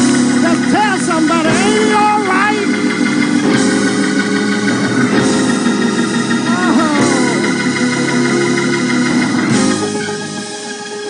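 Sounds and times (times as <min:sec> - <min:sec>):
church organ chords: 0:00.0 - 0:11.0
man singing: 0:06.5 - 0:07.6.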